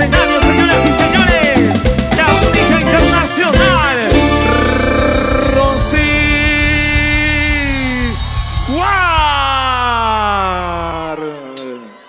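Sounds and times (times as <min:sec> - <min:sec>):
bass and drums: 0:00.0 - 0:11.0.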